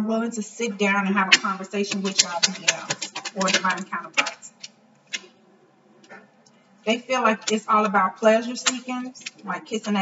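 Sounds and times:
cards clicking in hands: 0:01.9 - 0:05.3.

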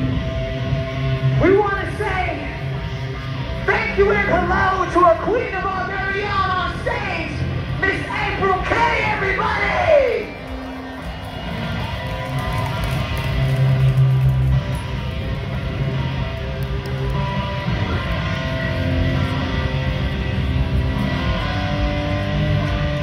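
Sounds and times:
bass guitar: 0:00.0 - 0:23.0
electric guitar chords: 0:00.0 - 0:23.0
live rock band: 0:00.0 - 0:23.0.

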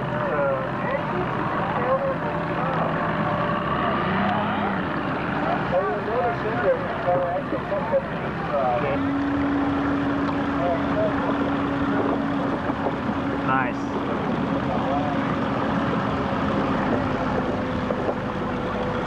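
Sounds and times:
boat engine drone: 0:00.0 - 0:19.0
crowd chattering and calling out: 0:00.0 - 0:19.0
higher engine tone: 0:00.0 - 0:19.0.

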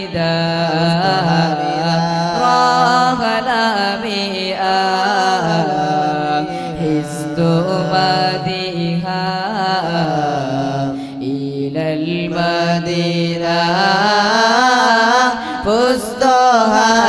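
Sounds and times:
devotional chanting: 0:00.0 - 0:17.0.

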